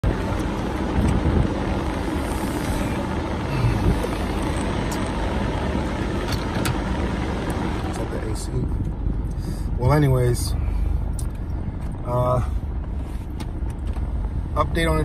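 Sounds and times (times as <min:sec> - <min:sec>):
car rumble from inside cabin: 0:00.0 - 0:15.0.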